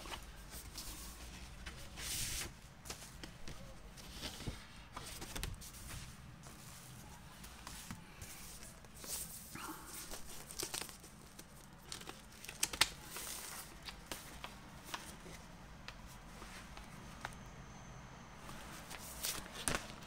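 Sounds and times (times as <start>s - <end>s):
paper and cardboard rustling: 0.0s - 17.3s, 18.4s - 20.0s.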